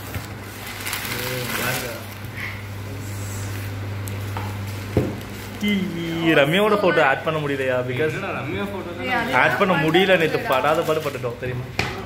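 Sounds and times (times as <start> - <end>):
newspaper wrapping rustling and tearing: 0.0 - 2.5, 3.6 - 6.0, 10.2 - 11.4
steady low hum: 0.0 - 12.0.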